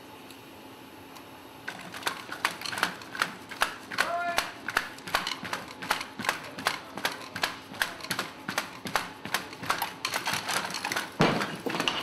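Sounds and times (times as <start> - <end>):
faint steady hum: 0.0 - 12.0
robot feet clattering on concrete: 1.7 - 12.0.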